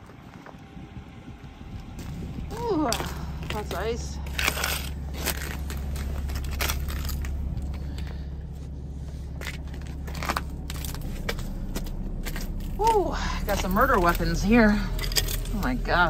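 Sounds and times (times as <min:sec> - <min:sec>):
steady low rumble: 0:00.0 - 0:16.0
ice crunching and cracking: 0:01.8 - 0:16.0.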